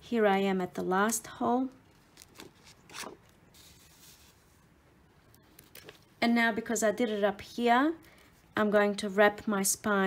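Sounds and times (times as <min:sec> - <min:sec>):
thread drawn through paper: 0:02.0 - 0:04.7.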